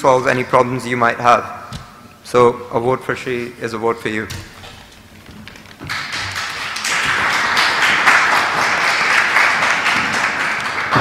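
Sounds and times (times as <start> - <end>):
audience applauding: 5.5 - 11.0.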